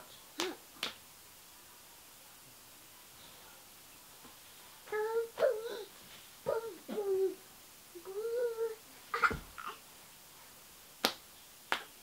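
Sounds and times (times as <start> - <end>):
hands slapping a person: 0.4 - 1.0, 11.0 - 12.0.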